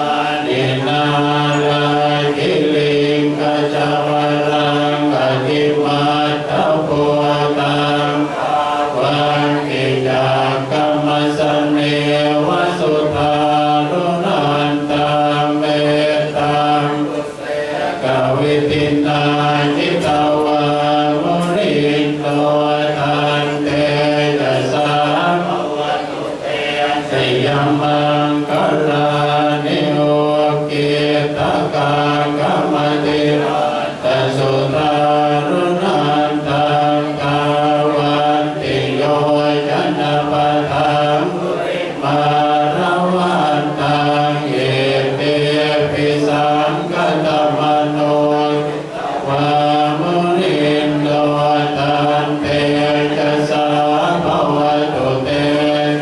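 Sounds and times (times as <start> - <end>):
monks chanting in unison: 0.0 - 56.0.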